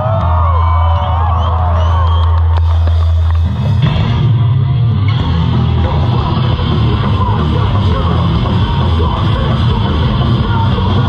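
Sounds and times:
crowd whooping and yelling: 0.0 - 3.8
loud live hardcore band: 0.0 - 11.0.

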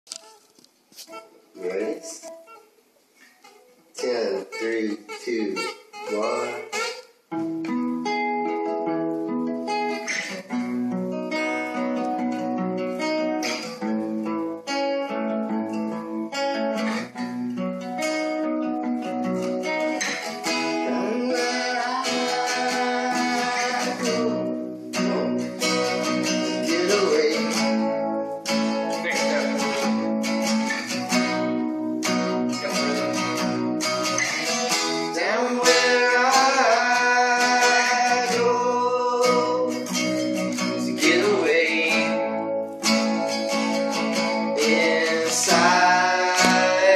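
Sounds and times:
acoustic guitars strumming: 0.0 - 46.9.

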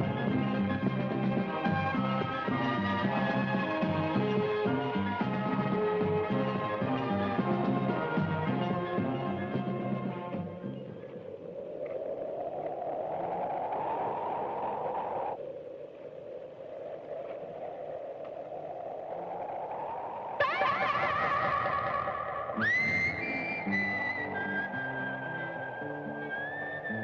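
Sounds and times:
western film score music: 0.0 - 10.9
wavering echoing electric tone: 20.4 - 27.0.

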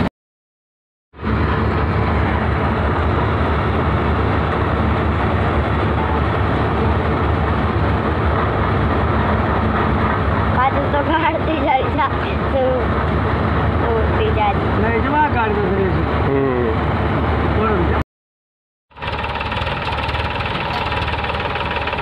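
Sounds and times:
farm machinery engine rumble: 1.2 - 16.3, 18.9 - 22.0
mechanical clatter: 18.9 - 22.0.

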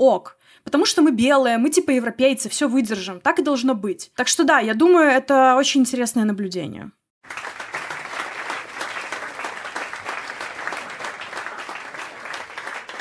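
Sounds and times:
audience applauding: 7.2 - 13.0.

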